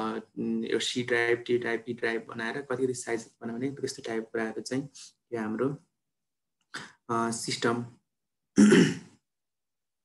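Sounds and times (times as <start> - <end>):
man coughing: 8.6 - 9.2.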